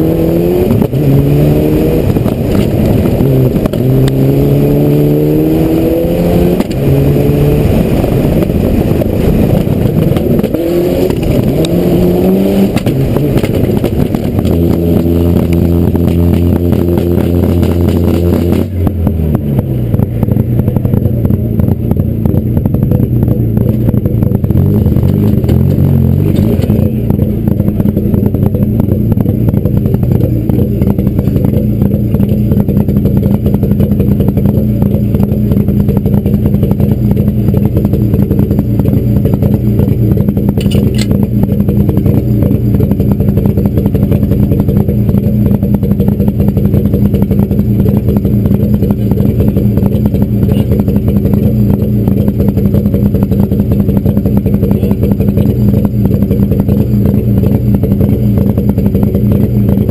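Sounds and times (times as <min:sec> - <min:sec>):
rally car engine running: 0:00.0 - 0:59.9
sharp click: 0:40.6 - 0:41.2.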